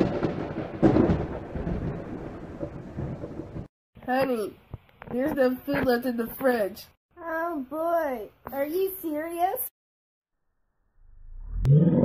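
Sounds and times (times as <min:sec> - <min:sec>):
thunder crack and rumble: 0:00.0 - 0:03.7.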